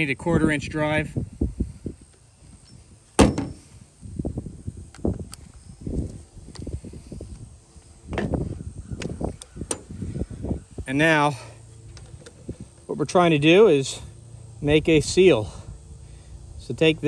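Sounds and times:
handling knocks on power tool: 3.2s - 3.6s.

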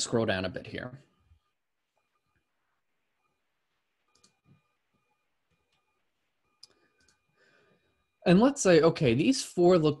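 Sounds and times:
computer mouse clicks: 4.1s - 4.7s, 6.6s - 7.3s.

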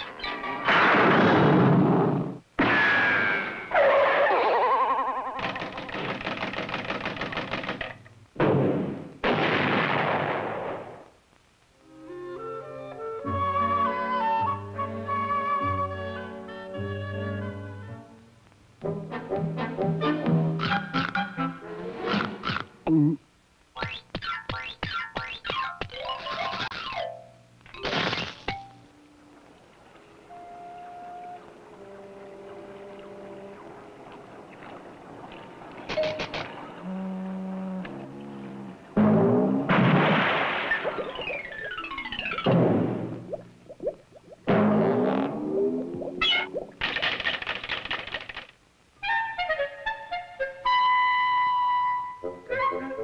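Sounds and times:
cartoon loud bangs: 0.6s - 4.3s, 8.4s - 11.0s, 39.0s - 41.3s, 42.4s - 43.2s
cartoon foghorn blasts: 36.8s - 39.4s.

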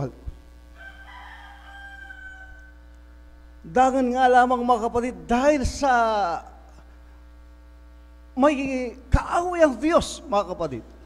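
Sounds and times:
man talking: 0.0s - 0.3s, 3.7s - 6.6s, 8.4s - 10.9s
faint mains hum: 0.0s - 11.0s.

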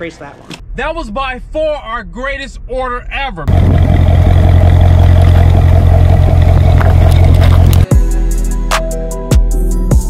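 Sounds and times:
engine deep exhaust rumble: 3.5s - 7.9s.

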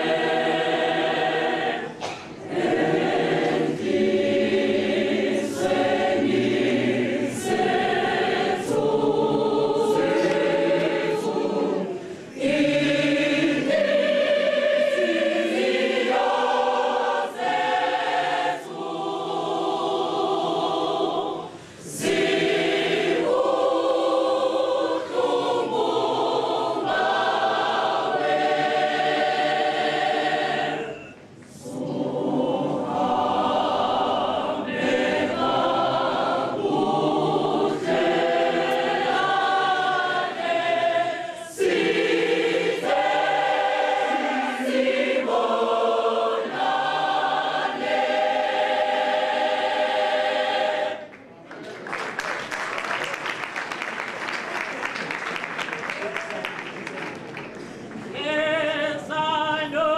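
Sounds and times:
church choir singing in harmony: 0.0s - 51.2s.

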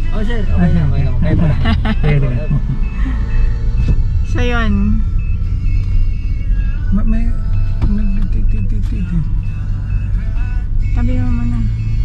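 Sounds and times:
car engine and road noise: 0.0s - 12.0s
car warning chime beeps: 0.0s - 12.0s.

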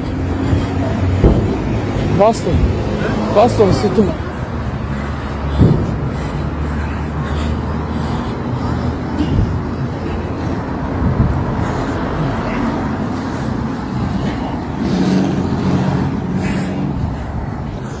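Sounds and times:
people's voices: 0.0s - 18.0s
street noise rumble: 0.0s - 18.0s.

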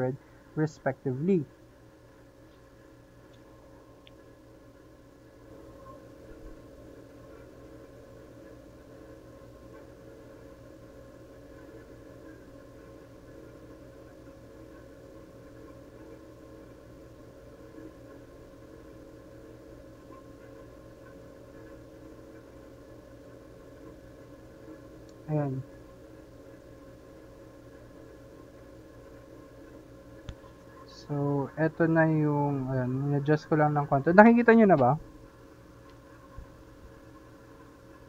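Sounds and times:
room hum: 0.0s - 38.0s.

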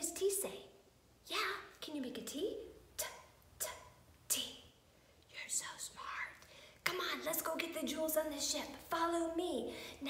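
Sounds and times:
woman whispering: 3.0s - 4.7s, 5.3s - 7.2s.

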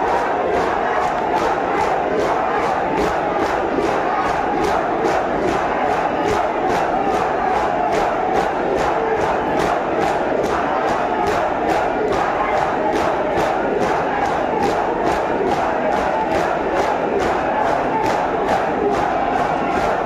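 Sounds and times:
hands slapping chests in unison: 0.0s - 20.0s
men chanting together: 0.0s - 20.0s.

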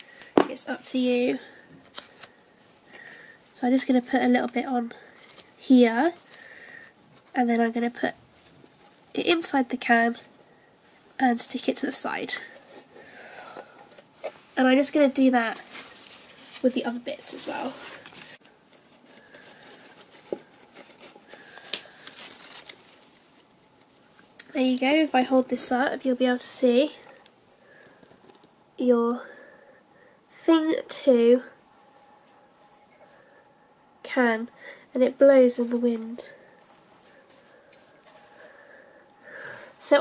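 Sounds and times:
faint steady hum: 0.0s - 40.0s
crepe paper rustling: 1.8s - 9.1s, 12.4s - 24.3s.

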